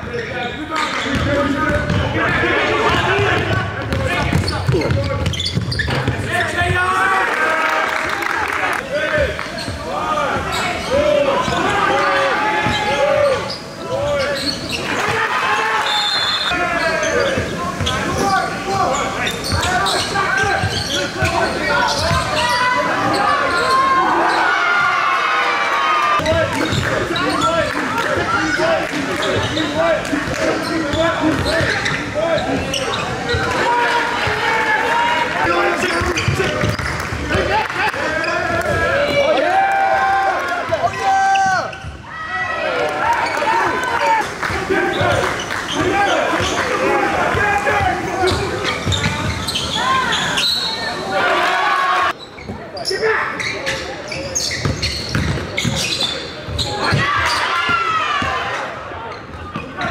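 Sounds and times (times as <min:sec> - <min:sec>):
sneakers squeaking: 0:00.0 - 0:07.0, 0:09.1 - 0:25.0, 0:26.2 - 0:34.4, 0:35.0 - 0:39.4, 0:40.7 - 0:42.1, 0:43.1 - 0:43.8, 0:44.5 - 0:51.3, 0:52.1 - 0:59.9
players calling out: 0:00.0 - 0:59.9.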